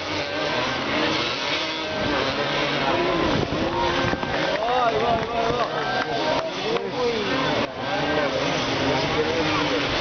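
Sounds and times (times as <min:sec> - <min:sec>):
motorcycle engines revving: 0:00.0 - 0:10.0
spectators' voices: 0:00.0 - 0:10.0.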